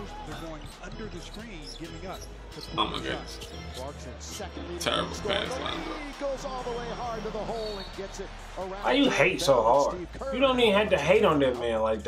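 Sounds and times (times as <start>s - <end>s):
loud man's voice: 0.0s - 12.0s
man talking: 2.6s - 3.4s, 4.3s - 7.8s, 8.6s - 12.0s.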